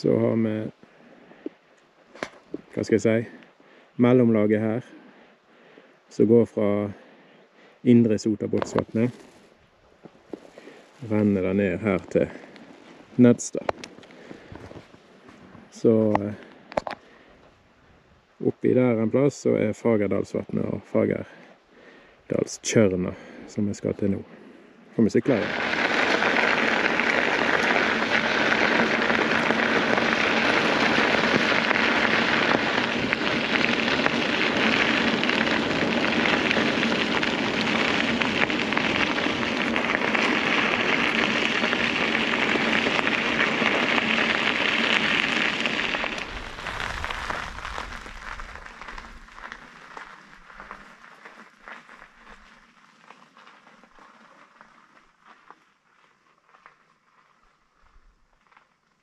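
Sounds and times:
bicycle tyres crunching on gravel: 0:00.0 - 0:17.6, 0:19.7 - 0:59.0.

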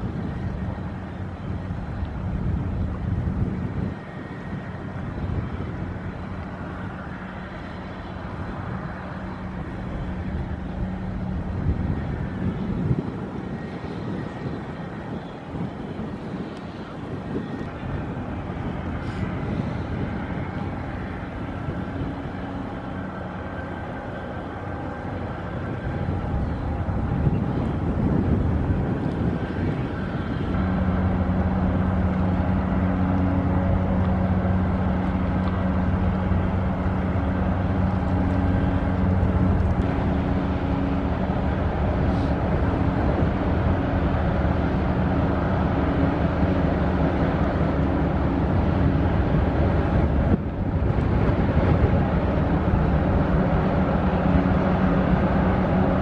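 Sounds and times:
truck engine humming: 0:00.0 - 0:56.0.

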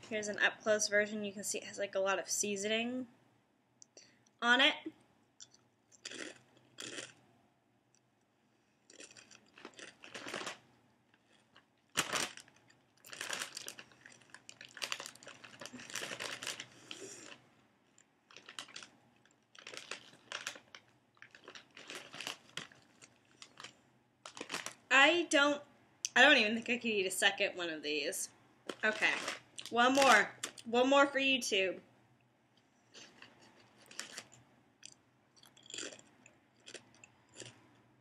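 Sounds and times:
potato chip crunching: 0:06.0 - 0:07.2, 0:08.9 - 0:10.6, 0:11.2 - 0:17.4, 0:18.3 - 0:23.7, 0:24.3 - 0:24.8, 0:32.9 - 0:37.6.

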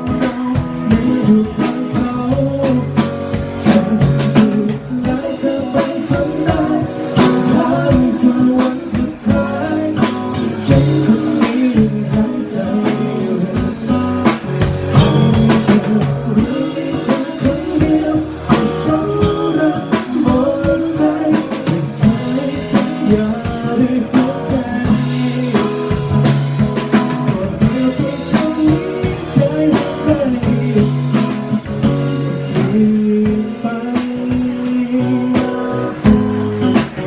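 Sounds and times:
band playing guitar and drums: 0:00.0 - 0:37.0
man singing into a microphone: 0:00.0 - 0:37.0.

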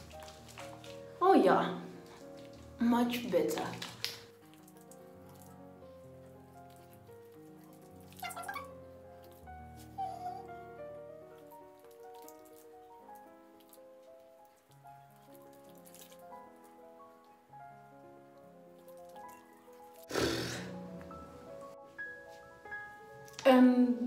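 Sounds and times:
slow ambient music: 0:00.0 - 0:24.0.

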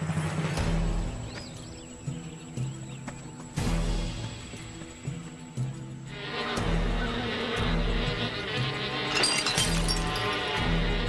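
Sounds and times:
background music: 0:00.0 - 0:11.0
cartoon bees buzzing: 0:05.8 - 0:11.0.

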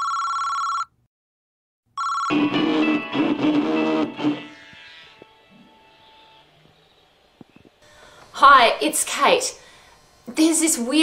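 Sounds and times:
telephone ringing tone: 0:00.0 - 0:01.0, 0:02.0 - 0:05.2.

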